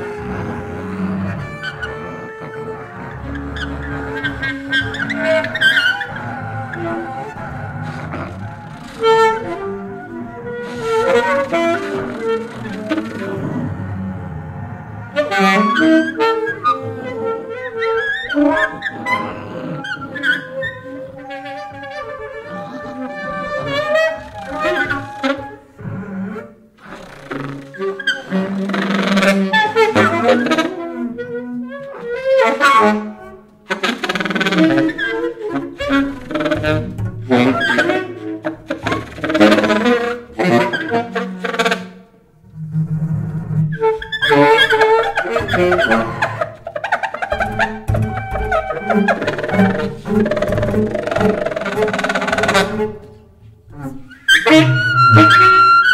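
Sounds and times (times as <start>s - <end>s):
bowed violin: 0.0s - 55.9s
double bass: 0.0s - 55.9s
saxophones: 0.0s - 55.9s.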